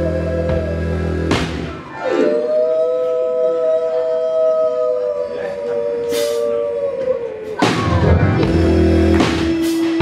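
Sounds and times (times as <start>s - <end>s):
voices singing in harmony: 0.0s - 10.0s.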